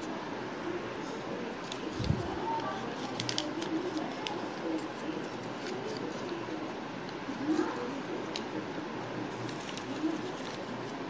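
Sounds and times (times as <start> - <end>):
paper rustling and creasing: 1.6 - 8.6, 9.3 - 11.0.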